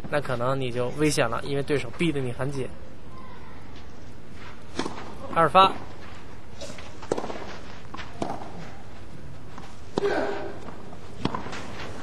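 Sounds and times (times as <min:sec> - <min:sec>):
tennis ball struck by rackets: 0:04.7 - 0:05.3, 0:07.0 - 0:08.6, 0:09.9 - 0:12.0.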